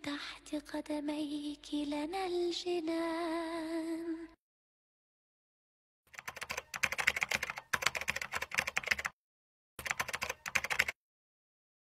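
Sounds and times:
keyboard typing: 0:06.1 - 0:09.2, 0:09.8 - 0:11.0.

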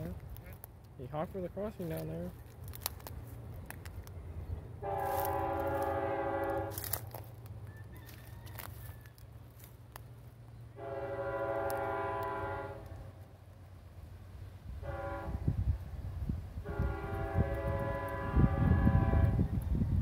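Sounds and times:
train cars rumbling past: 0:00.0 - 0:20.0
locomotive air horn blasts: 0:04.8 - 0:07.2, 0:10.7 - 0:13.2, 0:14.8 - 0:15.7, 0:16.6 - 0:19.6.

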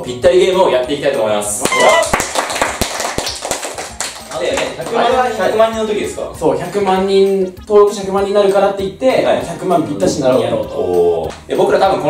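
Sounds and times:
people clapping: 0:01.6 - 0:05.2.

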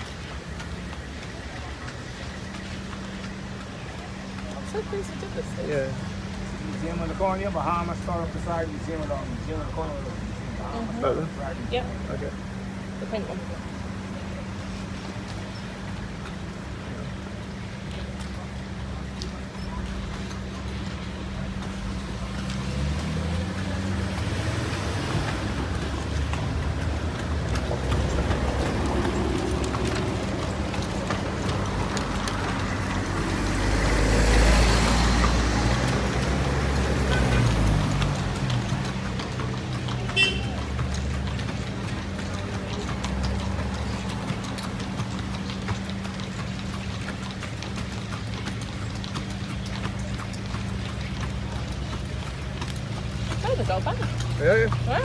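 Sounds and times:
horse hooves clip-clopping on road: 0:00.0 - 0:55.0
street traffic: 0:00.0 - 0:55.0
vehicle passing loudly: 0:20.8 - 0:55.0.

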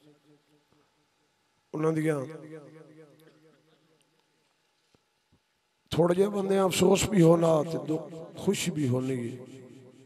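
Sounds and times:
faint steady hum: 0:00.0 - 0:10.0
man's amplified voice: 0:01.8 - 0:03.7, 0:05.9 - 0:09.8
amplified speech with echo: 0:01.8 - 0:03.8, 0:05.9 - 0:10.0.

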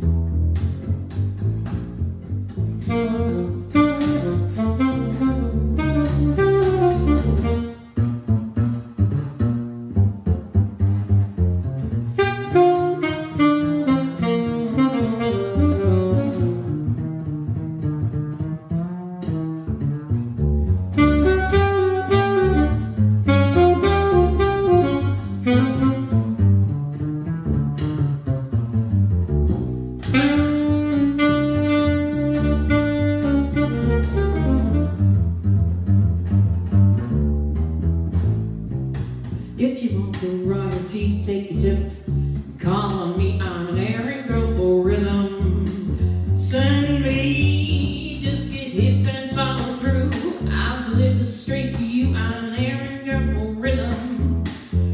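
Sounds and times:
jazz saxophone solo: 0:00.0 - 0:54.9
plucked upright bass: 0:00.0 - 0:54.9.

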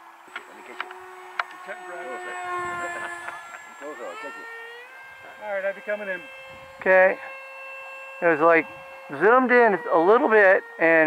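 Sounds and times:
electric ducted fan whining: 0:00.0 - 0:11.0.

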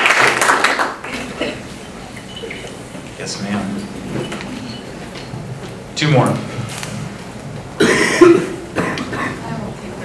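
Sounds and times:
person coughing: 0:07.8 - 0:09.5.

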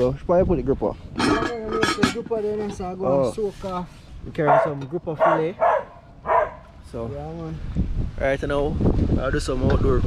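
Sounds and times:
pot lid clattering on rim: 0:01.2 - 0:02.3.

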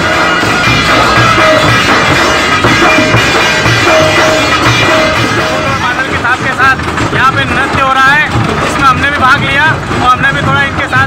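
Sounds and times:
drumming music: 0:00.0 - 0:11.0
fair crowd noise: 0:00.0 - 0:11.0.

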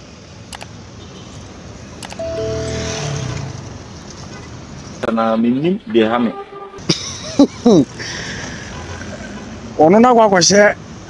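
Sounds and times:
steady street rumble: 0:00.0 - 0:11.0
passing vehicle engine hum: 0:02.2 - 0:05.0.

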